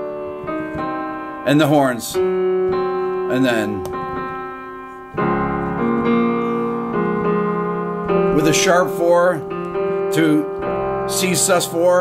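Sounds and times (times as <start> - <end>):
piano chord held: 0.0 - 12.0.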